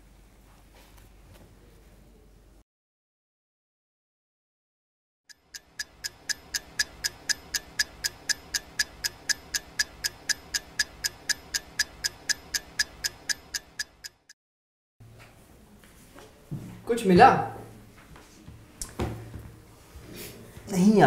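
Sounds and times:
rapid ticking: 0:05.3 - 0:14.4.

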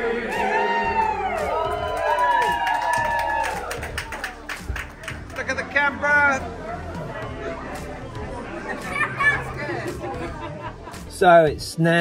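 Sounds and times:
group of people chattering: 0:04.1 - 0:12.0.

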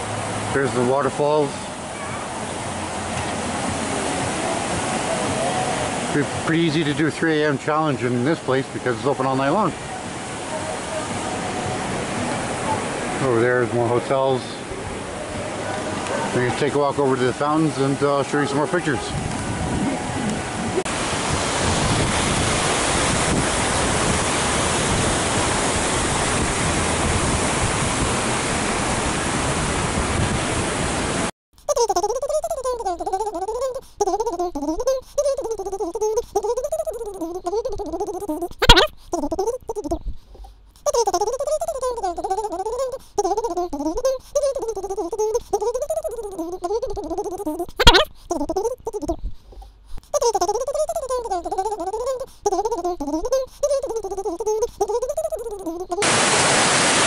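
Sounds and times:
fountain water rushing: 0:00.0 - 0:19.0, 0:20.5 - 0:31.3, 0:54.9 - 0:57.0
wavering melody: 0:50.2 - 0:56.0.

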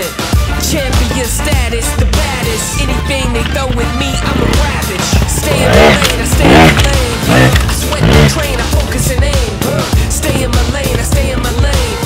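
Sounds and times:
background music: 0:00.0 - 0:12.0
motorcycle engine revving: 0:00.5 - 0:12.0.

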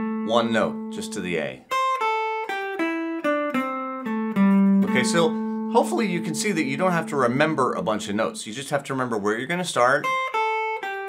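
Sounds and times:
electric guitar blues line: 0:00.0 - 0:11.0.

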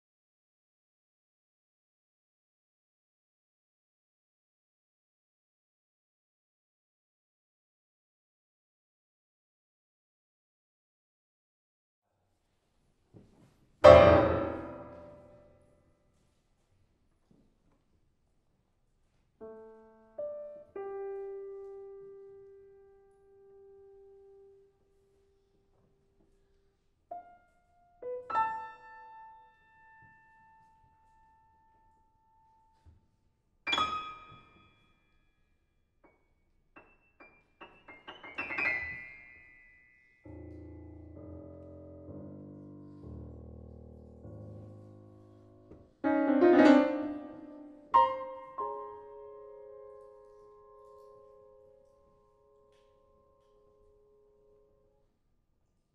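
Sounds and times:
grand piano notes ringing: 0:13.8 - 0:15.7, 0:33.7 - 0:34.9, 0:36.8 - 0:54.9.

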